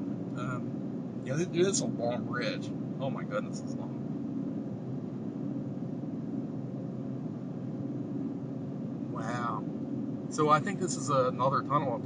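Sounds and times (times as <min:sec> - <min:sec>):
tyre and engine rumble in cabin: 0:00.0 - 0:12.0.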